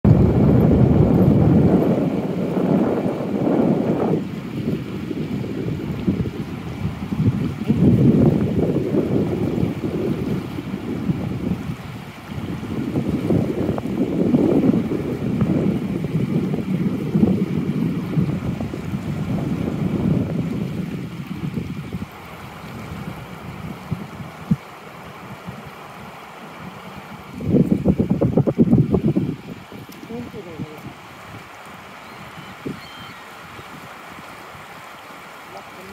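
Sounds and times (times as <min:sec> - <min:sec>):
wind buffeting microphone: 0:00.0 - 0:35.9
river water rushing: 0:00.1 - 0:35.9.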